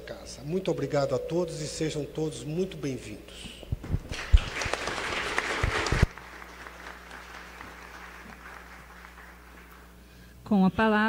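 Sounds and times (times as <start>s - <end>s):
low hum: 0.0s - 4.6s
audience applauding: 4.1s - 10.0s.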